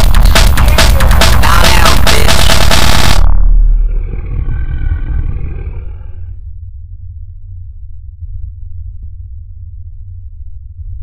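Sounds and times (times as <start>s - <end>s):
dense loud blast: 0.0s - 5.2s
steady low rumble: 0.0s - 11.0s
monster roar: 3.7s - 6.3s.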